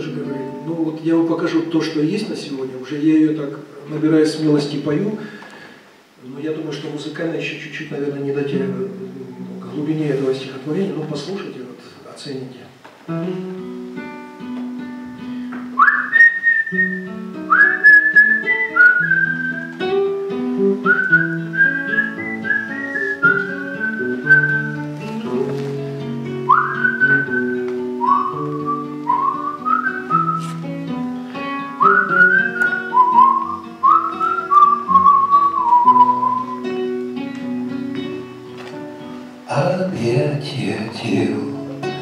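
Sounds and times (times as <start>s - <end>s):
acoustic guitar playing: 0.0s - 11.8s, 13.0s - 42.0s
whistled melody: 15.7s - 19.8s, 20.8s - 24.9s, 26.4s - 30.6s, 31.7s - 36.9s.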